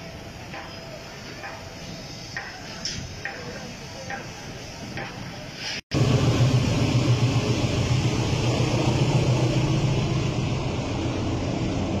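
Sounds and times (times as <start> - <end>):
crane engine droning: 6.0 - 12.0.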